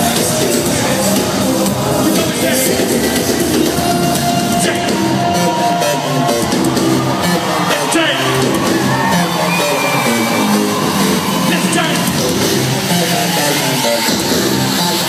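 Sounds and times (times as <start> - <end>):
audience singing and calling: 0.0 - 15.0
loud live concert music: 0.0 - 15.0.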